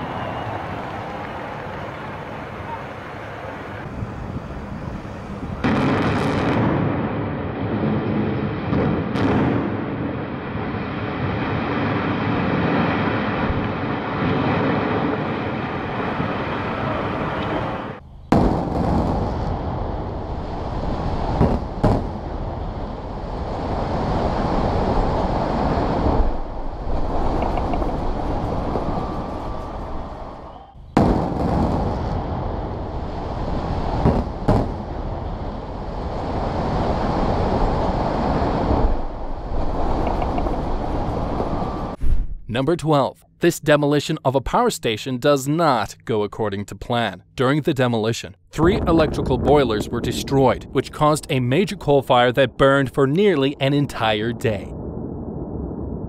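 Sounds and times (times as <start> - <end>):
building collapsing rumble: 3.5 - 42.6, 48.5 - 56.0.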